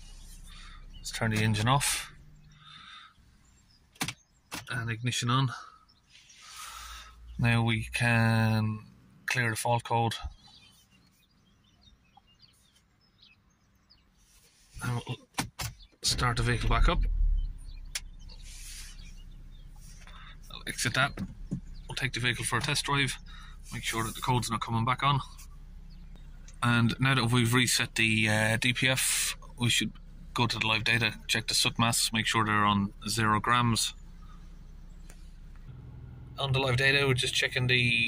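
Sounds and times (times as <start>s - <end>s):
diesel engine hum: 0.0s - 12.7s, 16.0s - 38.0s.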